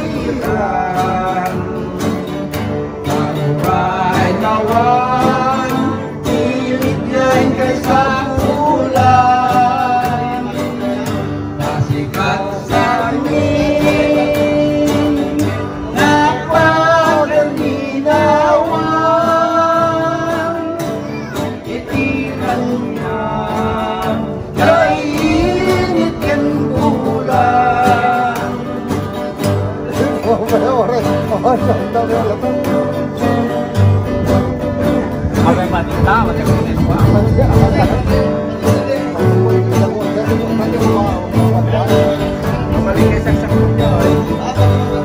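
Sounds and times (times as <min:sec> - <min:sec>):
men singing with vibrato: 0:00.0 - 0:45.0
strummed and plucked guitars: 0:00.0 - 0:45.0.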